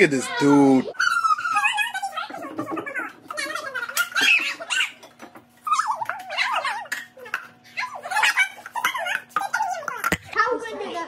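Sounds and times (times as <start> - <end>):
dog whining: 0.9 - 10.1.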